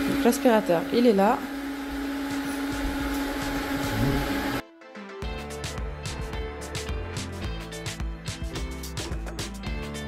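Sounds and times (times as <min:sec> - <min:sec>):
robot vacuum motor hum: 0:00.0 - 0:04.6
background music: 0:00.2 - 0:10.0.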